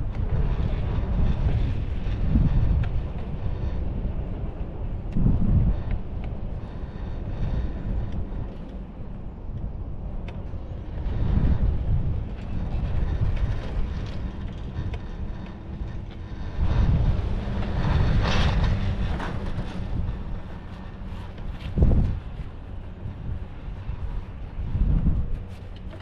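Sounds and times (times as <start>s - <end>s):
chairlift low rumble: 0.0s - 26.0s
wind on microphone: 0.0s - 26.0s.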